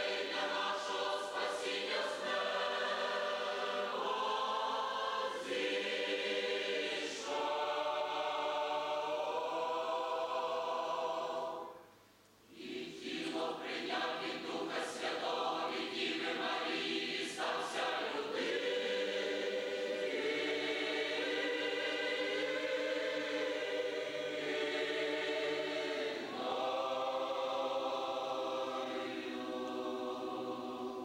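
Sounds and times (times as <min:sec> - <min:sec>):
mixed choir singing a hymn: 0:00.0 - 0:11.9, 0:12.5 - 0:31.0.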